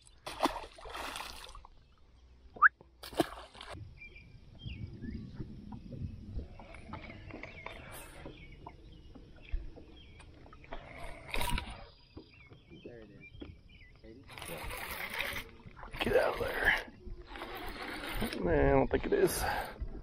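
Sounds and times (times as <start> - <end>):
water sloshing around boat: 0.0 - 20.0.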